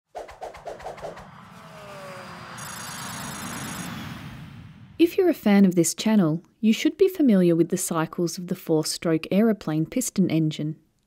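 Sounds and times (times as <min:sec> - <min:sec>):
quick electronic pulses: 0:00.1 - 0:05.0
rush of noise: 0:00.1 - 0:05.1
falling tone: 0:00.1 - 0:05.4.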